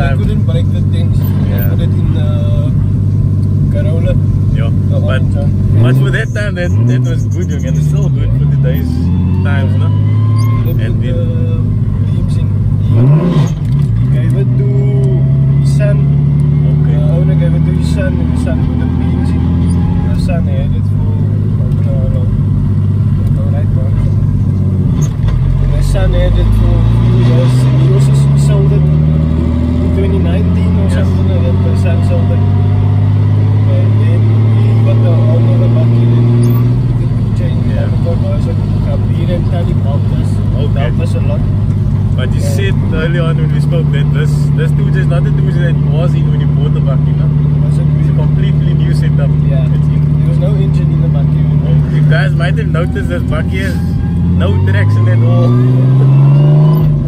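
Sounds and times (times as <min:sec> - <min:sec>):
car engine revving while driving: 0:00.0 - 0:57.0.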